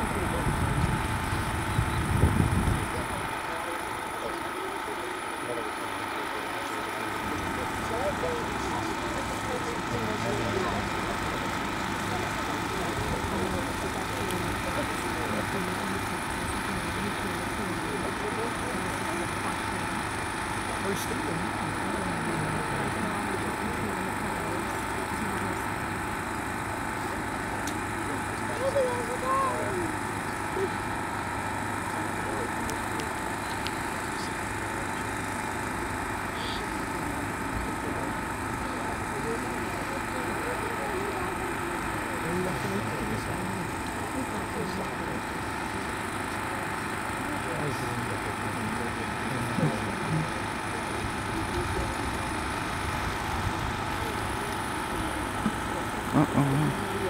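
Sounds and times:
people talking: 0.0s - 35.1s, 36.3s - 57.0s
small engine humming: 0.0s - 57.0s.

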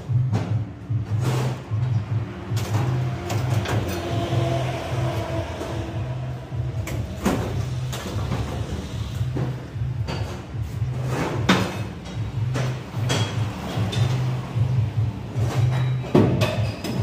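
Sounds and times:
music with low pulsing beat: 0.0s - 17.0s.

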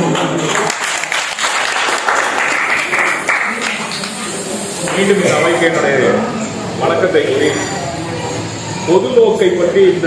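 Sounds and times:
audience clapping: 0.0s - 4.4s.

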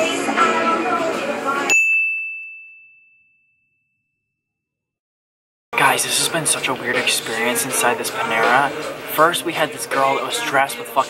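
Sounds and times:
high bell-like ding: 1.7s - 4.2s.

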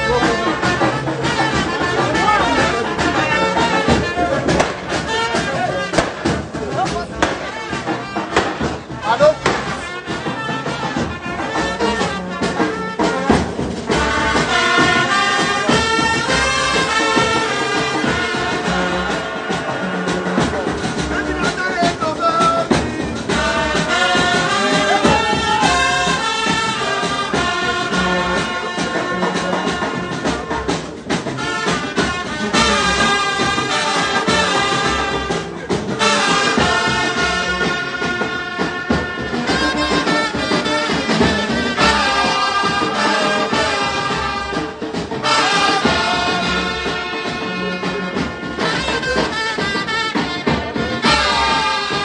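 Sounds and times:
accompanying instruments: 0.0s - 52.0s
drum beat: 0.0s - 52.0s
trumpet: 0.0s - 52.0s.

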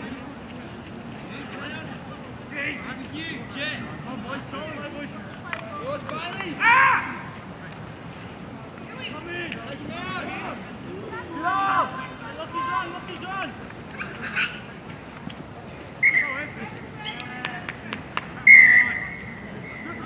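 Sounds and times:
players and spectators shouting: 5.8s - 7.4s, 9.0s - 13.6s
referee's whistle: 16.0s - 17.2s, 18.4s - 20.0s.

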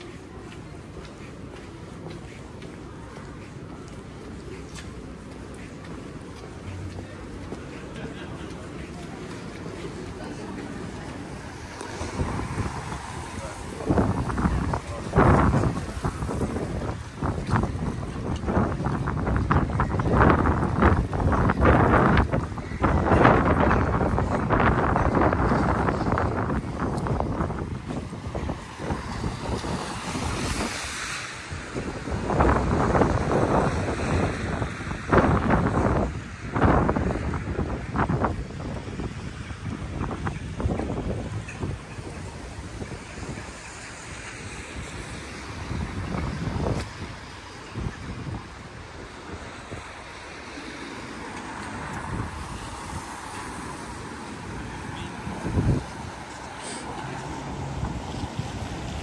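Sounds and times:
wind buffeting microphone: 6.2s - 59.0s.

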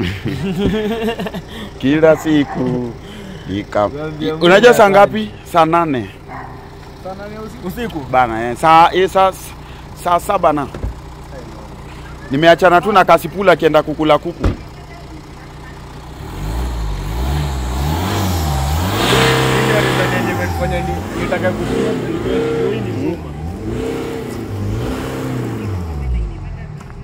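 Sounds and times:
car engine revving: 0.0s - 27.0s.

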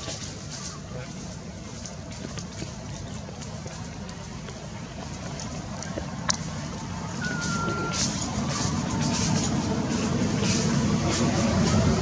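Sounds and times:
vehicle engine rumble: 0.0s - 12.0s
short steady beep: 7.2s - 8.1s.

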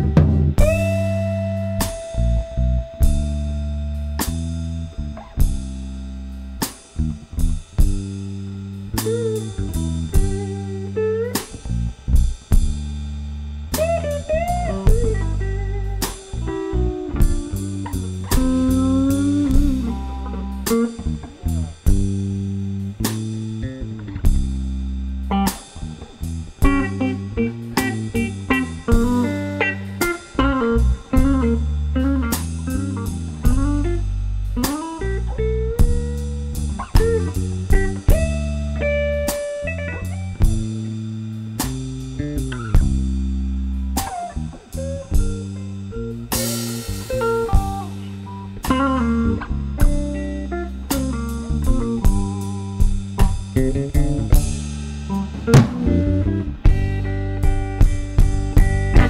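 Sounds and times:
bass guitar: 0.0s - 59.0s
drum kit: 0.0s - 59.0s
electric guitar lead lines: 0.0s - 59.0s.

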